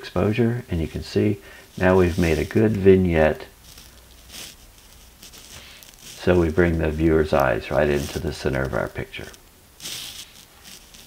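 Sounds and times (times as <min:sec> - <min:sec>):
faint hiss: 0:00.0 - 0:11.0
low steady hum: 0:00.0 - 0:11.0.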